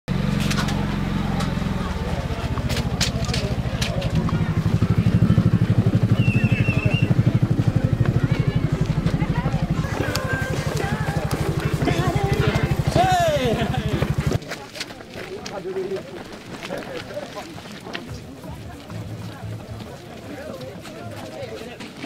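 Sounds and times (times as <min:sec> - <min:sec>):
engine running at low speed: 0:00.1 - 0:14.4.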